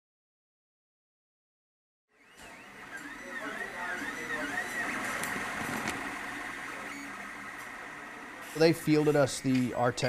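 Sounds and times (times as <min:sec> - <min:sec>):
machine humming with high whine: 0:02.1 - 0:10.0.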